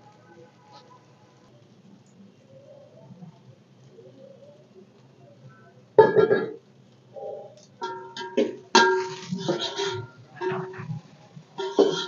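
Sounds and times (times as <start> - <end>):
metal spoon clinking on pot: 7.8 - 10.8, 11.6 - 12.0.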